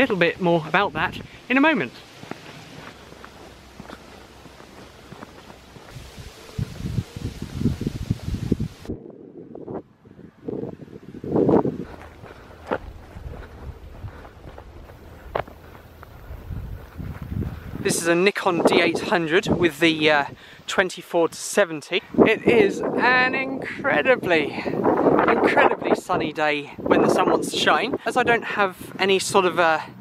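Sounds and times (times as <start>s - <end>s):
footsteps outdoors: 0.0s - 8.9s, 10.4s - 30.0s.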